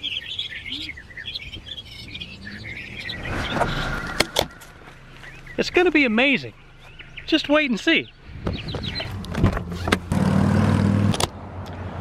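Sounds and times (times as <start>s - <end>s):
engine hum: 0.0s - 12.0s.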